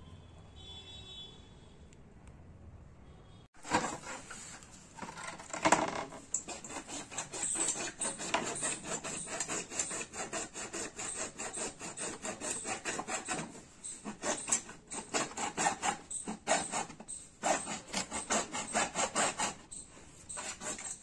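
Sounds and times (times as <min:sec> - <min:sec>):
hacksaw cutting plastic pipe: 0:03.6 - 0:21.0.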